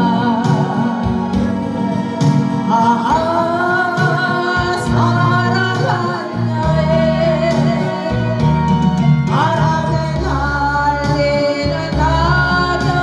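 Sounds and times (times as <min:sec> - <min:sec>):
karaoke backing track: 0:00.0 - 0:13.0
woman singing into a microphone: 0:00.0 - 0:13.0.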